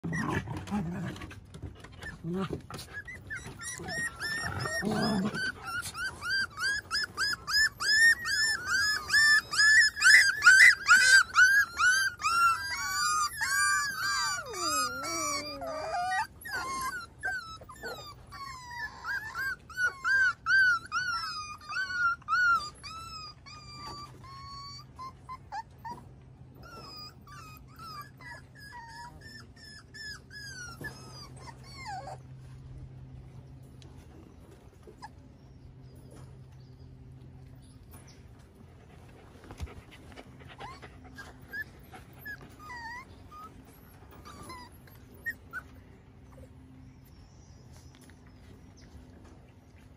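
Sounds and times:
puppies whining and yipping: 0.0s - 49.9s.

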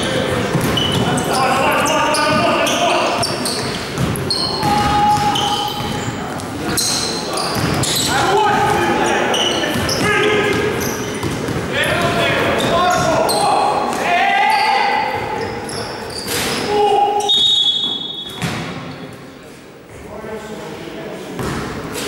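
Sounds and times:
basketball bouncing on court: 0.0s - 8.9s, 9.6s - 13.2s, 18.4s - 18.9s, 21.4s - 21.8s
players calling out: 0.0s - 18.3s.

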